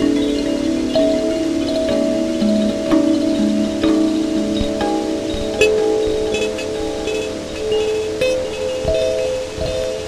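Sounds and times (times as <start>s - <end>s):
kalimba with delay effects: 0.0s - 10.0s.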